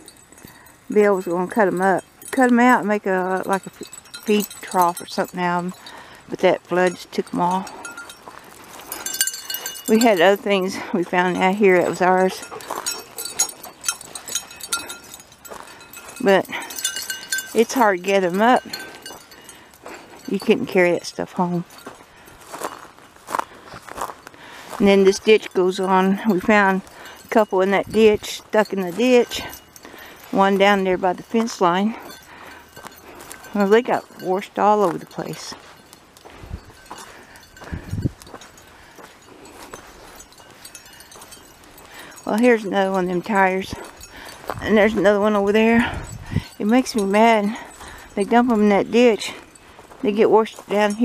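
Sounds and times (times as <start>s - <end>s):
dry brush crackling: 0.0s - 51.0s
faint metallic clinks: 0.0s - 51.0s
footsteps on sandy ground: 0.0s - 51.0s.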